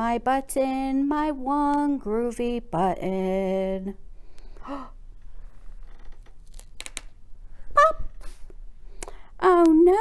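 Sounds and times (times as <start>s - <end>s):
woman gasping: 4.6s - 5.0s
short vocal exclamation: 7.7s - 8.2s.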